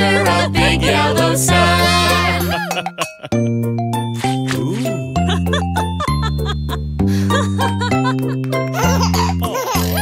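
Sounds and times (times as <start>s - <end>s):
children's song with synth chords: 0.0s - 4.4s
cartoon children giggling: 8.8s - 10.0s.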